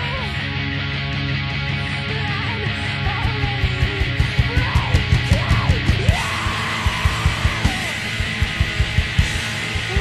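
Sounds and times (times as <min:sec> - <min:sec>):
distorted guitars: 0:00.0 - 0:10.0
driving drums: 0:00.0 - 0:10.0.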